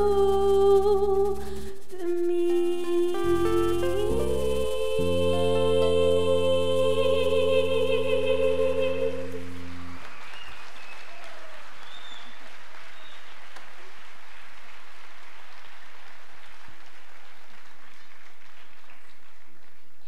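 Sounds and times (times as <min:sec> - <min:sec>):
band playing a held chord: 0:01.4 - 0:10.3
audience applauding: 0:09.2 - 0:20.0.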